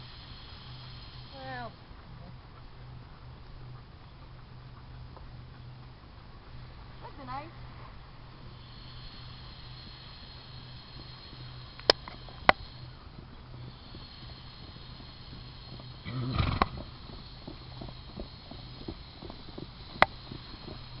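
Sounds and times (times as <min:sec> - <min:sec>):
steady low hum: 0:00.0 - 0:21.0
horse hoofbeats on sand: 0:08.3 - 0:21.0
sharp clicks: 0:11.0 - 0:12.8, 0:17.5 - 0:20.8.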